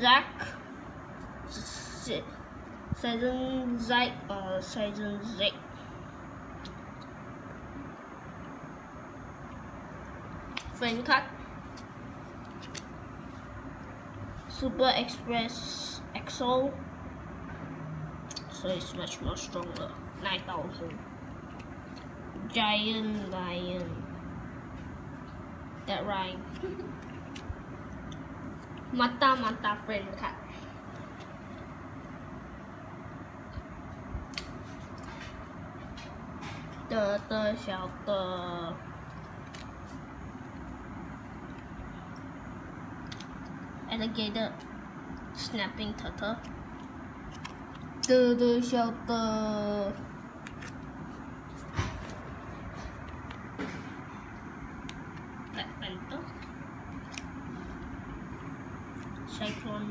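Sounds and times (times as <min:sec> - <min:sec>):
low room noise: 0:00.0 - 0:59.9.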